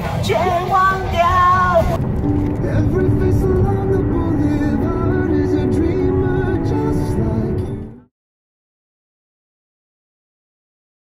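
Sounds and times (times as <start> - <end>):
car driving on highway rumble: 0.0 - 8.0
background music with simple melody: 2.2 - 8.1
person singing into karaoke microphone: 2.6 - 7.9.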